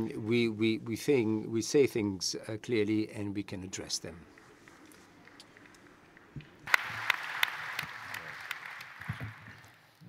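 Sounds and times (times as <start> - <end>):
audience applause: 6.5 - 9.9.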